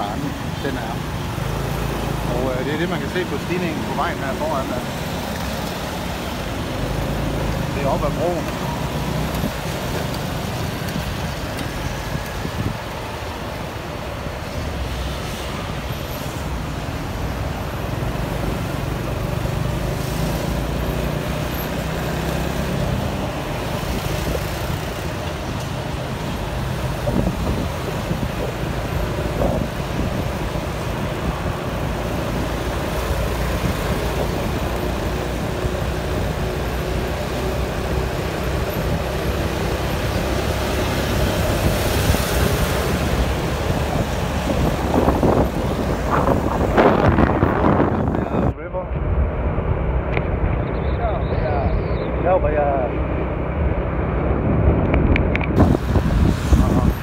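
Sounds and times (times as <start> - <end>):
surrounding cars and buses: 0.0 - 57.0
vehicle engine hum and road noise: 0.0 - 57.0.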